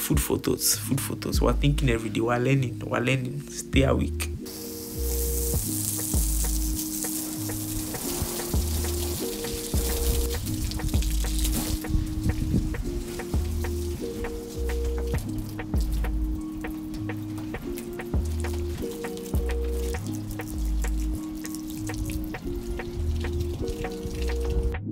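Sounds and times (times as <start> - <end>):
background music with bass and beat: 3.7 - 24.9
garden hose spraying water: 4.2 - 24.8.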